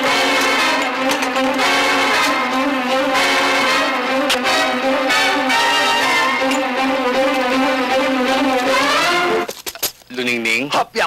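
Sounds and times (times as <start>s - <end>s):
instrumental music with held notes: 0.0s - 9.6s.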